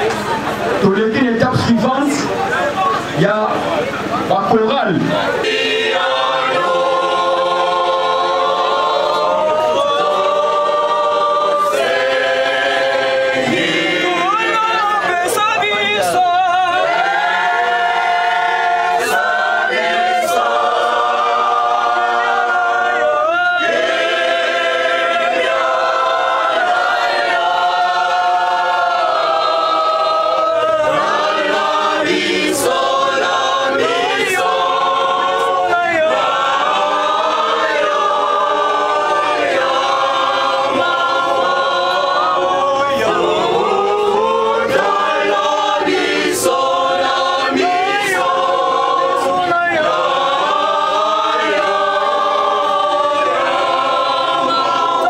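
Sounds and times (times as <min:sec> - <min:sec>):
choir singing: 0:05.2 - 0:55.0.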